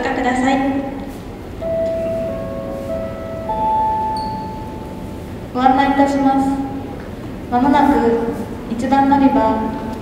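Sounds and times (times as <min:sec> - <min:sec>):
electronic public-address chime: 0:01.6 - 0:06.7.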